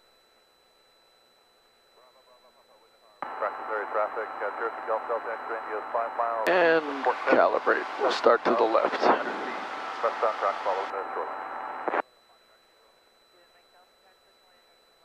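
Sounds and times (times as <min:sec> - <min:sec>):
voice over radio intercom: 0:03.2 - 0:12.0.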